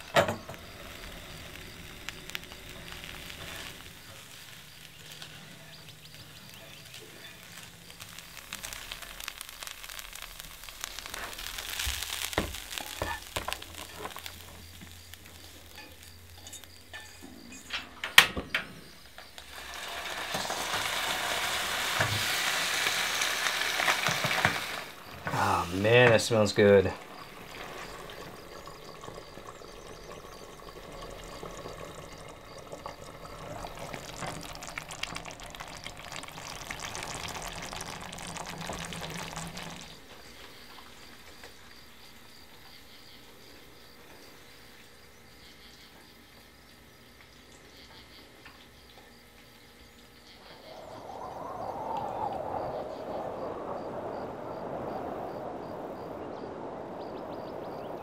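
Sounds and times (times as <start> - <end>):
food sizzling in frying pan: 0.0 - 18.1, 18.8 - 42.9, 48.6 - 58.0
food poured onto plate: 27.0 - 40.0
steady rushing noise: 50.4 - 58.0.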